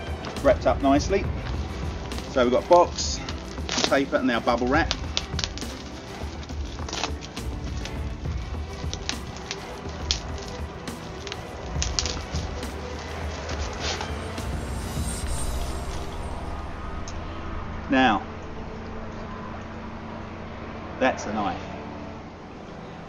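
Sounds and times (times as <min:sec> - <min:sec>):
paper and bubble wrap crinkling: 0:01.4 - 0:15.5.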